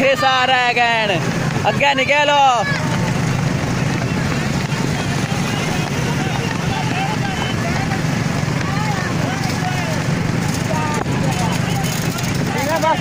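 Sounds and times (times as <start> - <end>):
faint shouting voices: 0.0 - 13.0
motorcycle engine running: 0.0 - 13.0.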